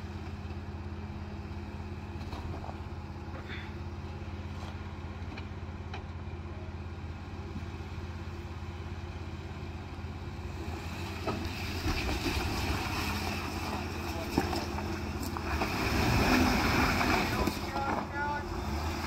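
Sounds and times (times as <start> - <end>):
engine working under load: 0.0 - 19.0.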